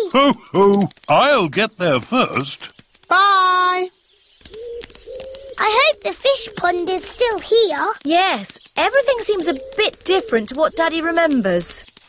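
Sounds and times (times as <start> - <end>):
person speaking: 0.0 - 3.9, 5.6 - 11.8
pigeon cooing softly: 9.1 - 11.0.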